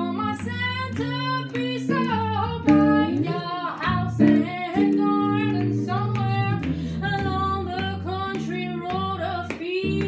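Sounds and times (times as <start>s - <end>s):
electric jazz guitar: 0.0s - 10.0s
woman singing jazz melody: 0.0s - 10.0s.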